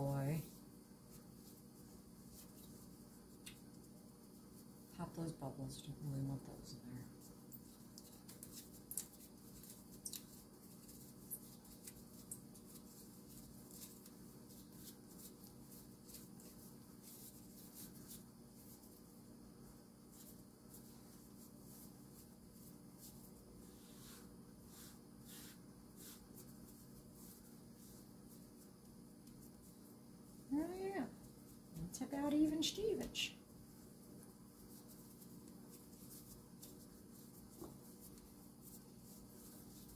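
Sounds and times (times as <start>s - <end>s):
faint room hum: 0.0s - 39.9s
hands shaping dough: 0.0s - 39.9s.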